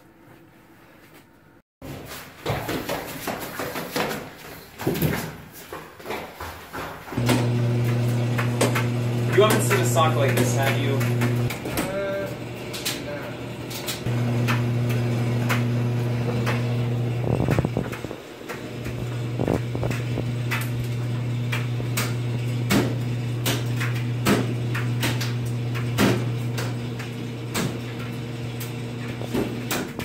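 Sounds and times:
appliance lids and doors clunking: 7.2 - 30.0.

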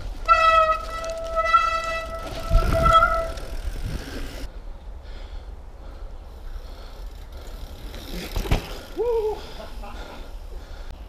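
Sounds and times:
low rumble of trail noise: 0.0 - 11.0
high-pitched bike brake squeal: 0.2 - 3.9.

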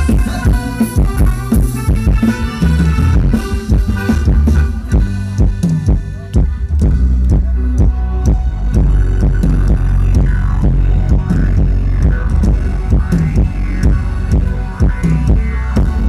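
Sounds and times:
heavy bass: 0.0 - 16.0
live band dance music: 0.0 - 16.0
steady drum beat: 0.0 - 16.0.

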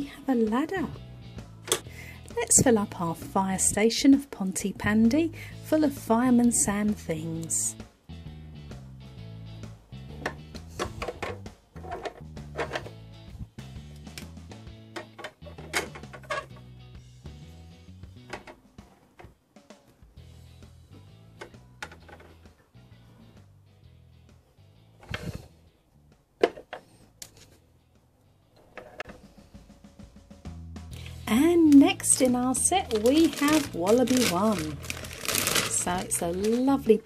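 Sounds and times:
light background music: 0.0 - 37.0.

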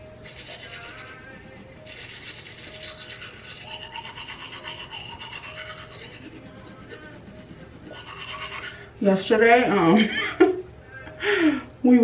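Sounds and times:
toothbrush scrubbing teeth: 0.2 - 8.8.

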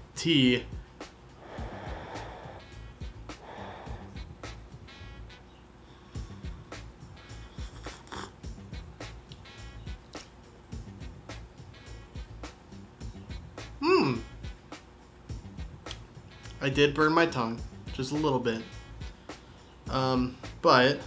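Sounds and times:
music with ticking beat: 0.6 - 5.5, 6.1 - 20.8
breath blowing across a mug: 1.4 - 4.3.

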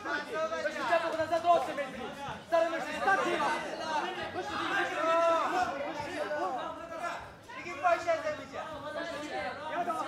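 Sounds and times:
men calling out and talking: 0.0 - 10.0.

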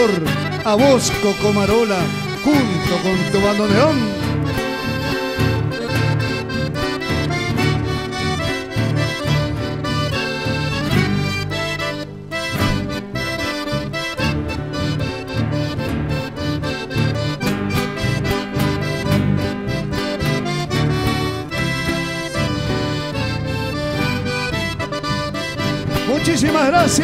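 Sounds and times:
accordion melody: 0.0 - 27.0
acoustic guitars: 0.0 - 27.0
bass guitar: 0.0 - 27.0.

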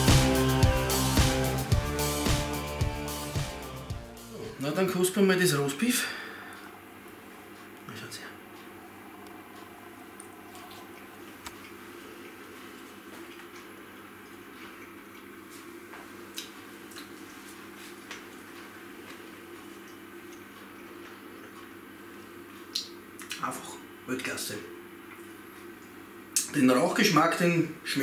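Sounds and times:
low room hum: 0.0 - 28.0
chewing steak: 8.4 - 23.4.

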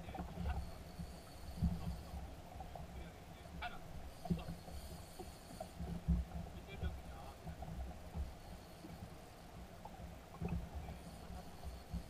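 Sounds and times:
low rumble of small boat: 0.0 - 12.0.

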